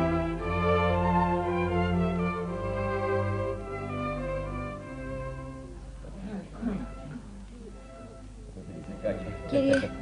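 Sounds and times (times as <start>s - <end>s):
bowed string music: 0.0s - 10.0s.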